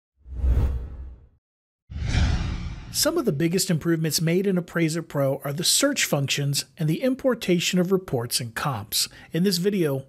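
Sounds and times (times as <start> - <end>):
deep whoosh: 1.9 - 3.2.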